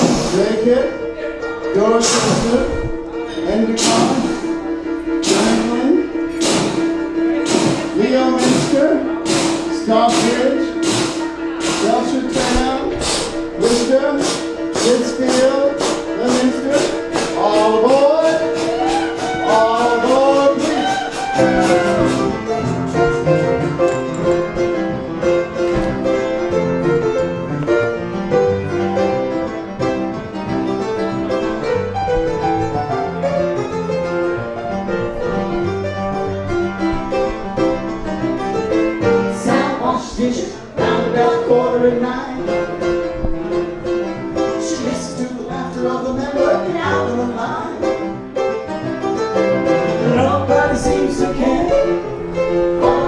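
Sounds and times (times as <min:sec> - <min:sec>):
upright piano playing chords: 0:00.0 - 0:53.0
woman singing wordless notes: 0:39.4 - 0:42.8, 0:44.5 - 0:48.1, 0:50.0 - 0:52.1, 0:52.8 - 0:53.0.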